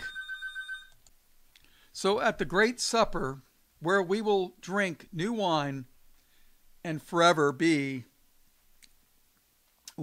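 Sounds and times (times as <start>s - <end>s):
telephone ringing: 0.0s - 1.0s.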